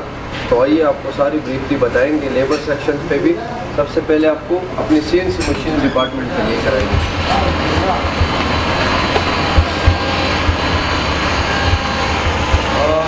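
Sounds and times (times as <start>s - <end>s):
workshop machinery hum and hiss: 0.0s - 13.0s
short low knocks: 7.9s - 13.0s.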